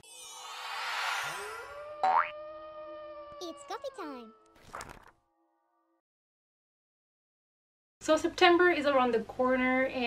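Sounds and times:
shimmering whoosh: 0:00.0 - 0:02.1
upward boing sweep: 0:00.0 - 0:02.8
rising glide into held tone: 0:00.0 - 0:04.6.

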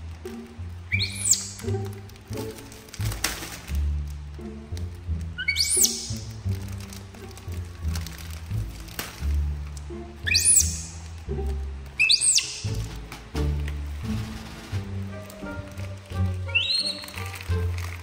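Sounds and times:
high whistling chirps: 0:00.9 - 0:01.7, 0:05.4 - 0:06.2, 0:10.2 - 0:11.0, 0:12.0 - 0:12.8, 0:16.5 - 0:17.4.

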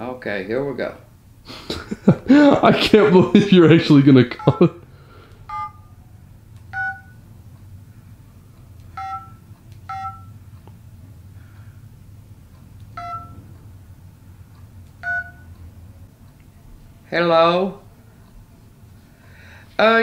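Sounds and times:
touch-tone keypad beeps: 0:05.5 - 0:05.9, 0:06.7 - 0:07.2, 0:08.9 - 0:10.4, 0:13.0 - 0:13.4, 0:15.0 - 0:15.5.

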